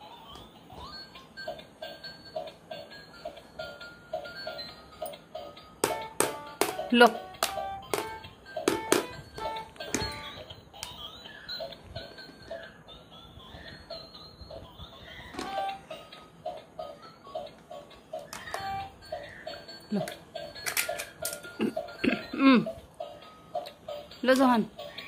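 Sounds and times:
tinny electronic toy tune: 0:00.7 - 0:17.5, 0:18.4 - 0:20.8
toy handling clicks and knocks: 0:05.8 - 0:11.0, 0:15.3 - 0:15.8, 0:17.5 - 0:18.9, 0:19.9 - 0:21.7.

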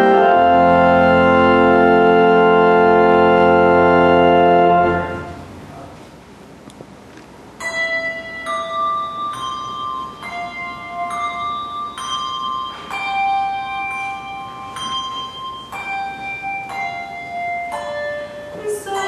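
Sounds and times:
handbells slow melody: 0:07.6 - 0:19.0.

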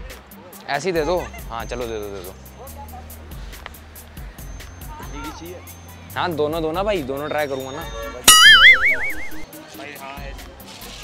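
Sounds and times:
comedy pluck and wobbling tone: 0:08.3 - 0:09.4.

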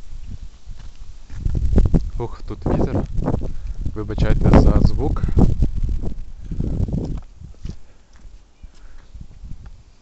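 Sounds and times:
footsteps on stone paving: 0:00.0 - 0:03.9, 0:05.8 - 0:10.0
wind buffeting microphone: 0:00.0 - 0:10.0.

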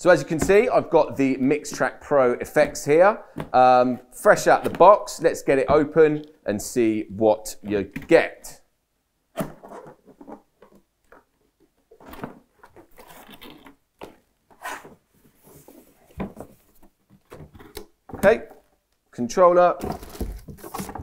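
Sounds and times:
box sliding and knocking: 0:19.8 - 0:21.0
foam packaging rustling: 0:19.8 - 0:21.0.

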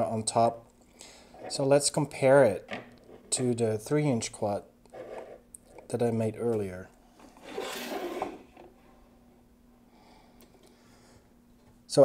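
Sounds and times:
drone sliding across wooden table: 0:04.9 - 0:05.4, 0:07.2 - 0:09.0.

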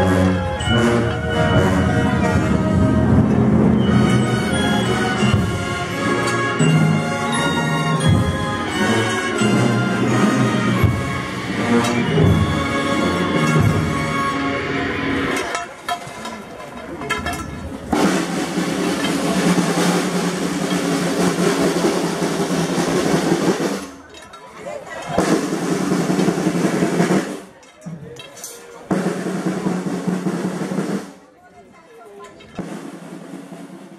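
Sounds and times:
snare drum rolls: 0:17.9 - 0:24.0, 0:25.1 - 0:27.6, 0:28.9 - 0:31.2, 0:32.6 - 0:33.9.

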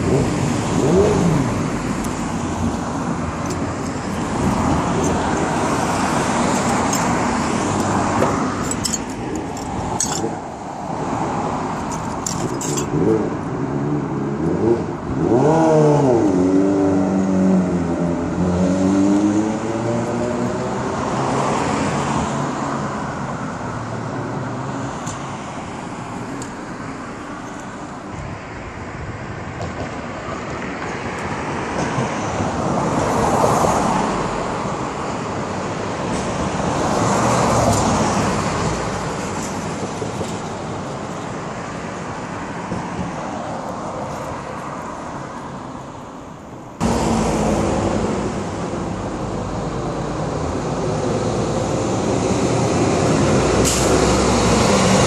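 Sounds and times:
vehicle engine accelerating: 0:00.0 - 0:08.6
cars passing by: 0:00.0 - 0:55.0.

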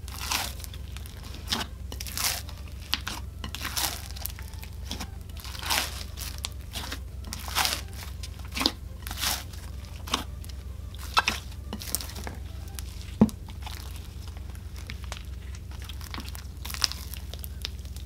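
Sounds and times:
slime popping and crackling: 0:00.0 - 0:18.0.

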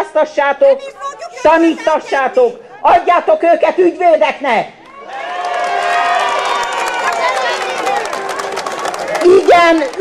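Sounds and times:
scattered clapping: 0:04.8 - 0:10.0.

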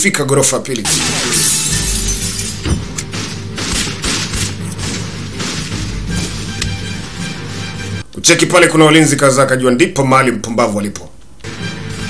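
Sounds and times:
glass shattering: 0:00.9 - 0:02.8
dramatic score music: 0:01.0 - 0:08.1, 0:11.4 - 0:12.0.

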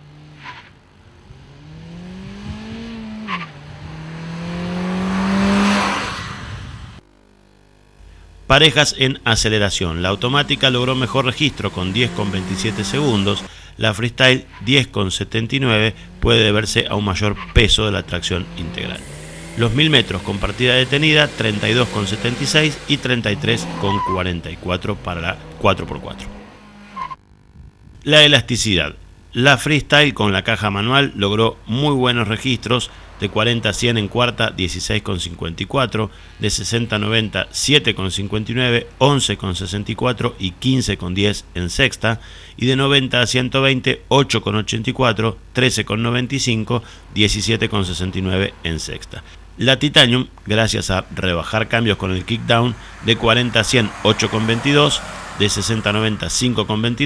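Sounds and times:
car engine accelerating: 0:00.0 - 0:07.0, 0:09.4 - 0:13.5, 0:15.1 - 0:27.2, 0:31.2 - 0:35.6, 0:46.0 - 0:57.0.

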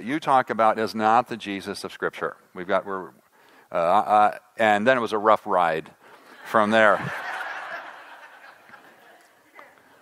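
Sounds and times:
congregation laughing: 0:06.4 - 0:09.4.

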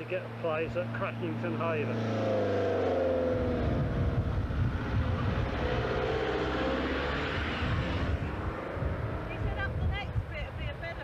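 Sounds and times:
engine drone: 0:00.0 - 0:10.0
wind buffeting microphone: 0:02.4 - 0:11.0.

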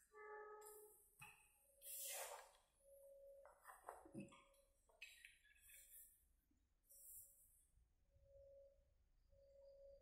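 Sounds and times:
faint steady tones: 0:02.7 - 0:10.0.

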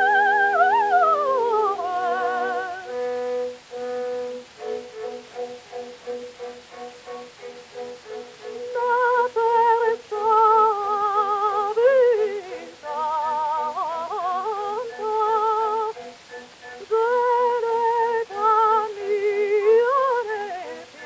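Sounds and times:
mezzo-soprano singing with vibrato: 0:00.0 - 0:21.0.

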